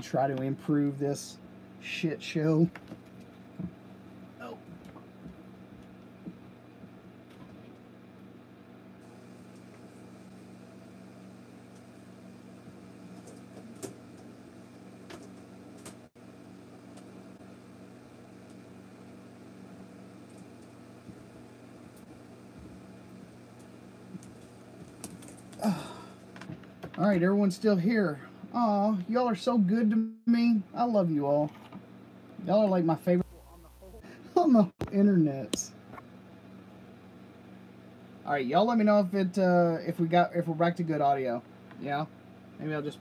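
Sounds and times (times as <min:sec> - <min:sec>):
steady low hum: 0:00.0 - 0:43.0
person saying oh: 0:25.6 - 0:26.1.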